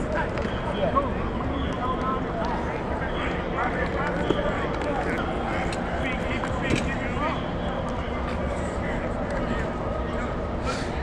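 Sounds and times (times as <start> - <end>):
steady background hum: 0.0 - 11.0.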